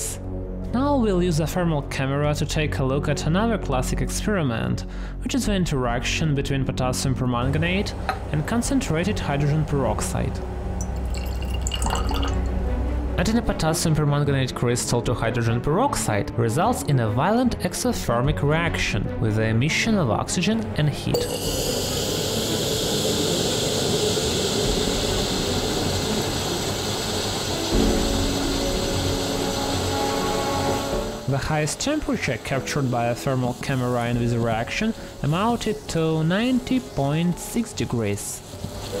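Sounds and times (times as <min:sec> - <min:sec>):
faint background music: 0:00.0 - 0:39.0
steady low hum: 0:07.4 - 0:12.2
loud hissing fizz: 0:07.5 - 0:12.6, 0:21.2 - 0:39.0
liquid trickling into glass flask: 0:10.8 - 0:12.6, 0:21.2 - 0:23.5.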